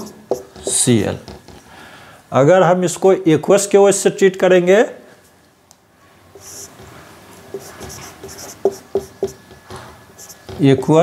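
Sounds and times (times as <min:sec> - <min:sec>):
whiteboard marker squeaking: 0:00.0 - 0:00.9, 0:06.4 - 0:06.9, 0:07.5 - 0:11.0.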